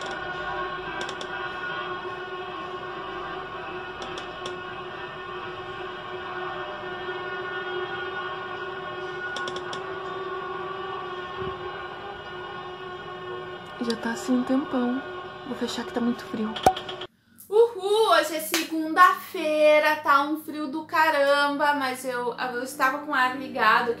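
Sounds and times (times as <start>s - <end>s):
faint clicks: 1.0s - 1.3s.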